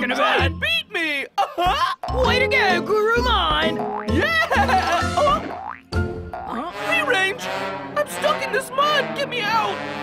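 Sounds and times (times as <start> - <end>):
playful background music: 0.0 - 10.0
cartoon boing: 3.6 - 6.6.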